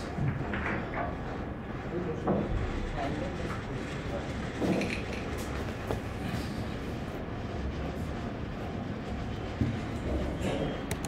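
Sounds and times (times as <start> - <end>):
low rumbling background noise: 0.0 - 11.0.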